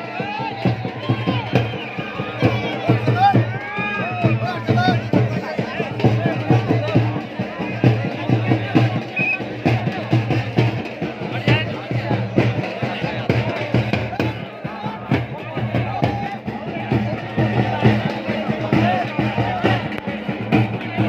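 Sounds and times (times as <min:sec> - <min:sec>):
music with drum beat: 0:00.0 - 0:21.0
voices over music: 0:00.0 - 0:21.0.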